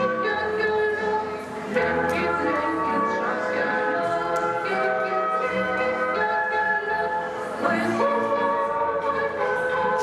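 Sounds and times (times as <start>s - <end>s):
choir singing: 5.4s - 10.0s.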